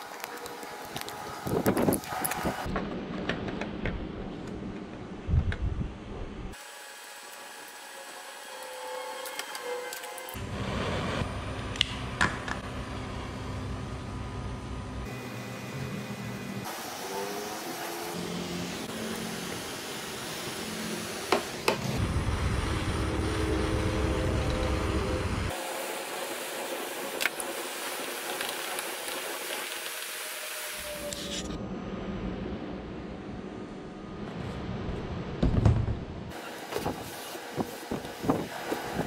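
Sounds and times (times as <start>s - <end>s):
propane torch hissing: 16.4s - 22.1s.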